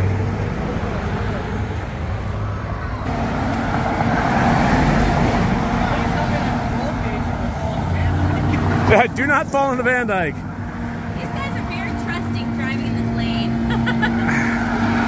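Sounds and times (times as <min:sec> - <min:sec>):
diesel engine running: 0:00.0 - 0:15.0.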